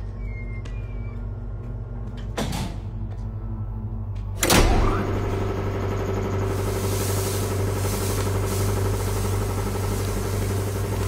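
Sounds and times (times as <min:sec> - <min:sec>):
machinery humming: 0:00.0 - 0:11.0
hiss: 0:06.3 - 0:11.0.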